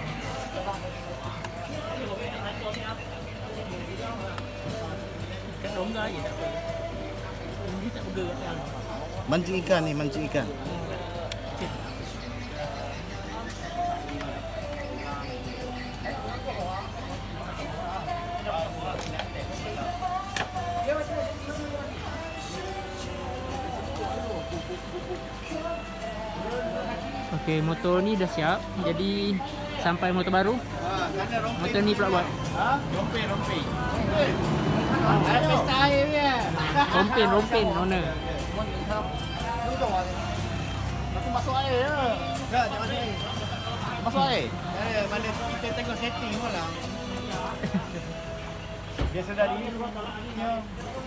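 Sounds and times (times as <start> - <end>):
music with singing voice: 0.0 - 51.0
people talking: 9.4 - 15.4.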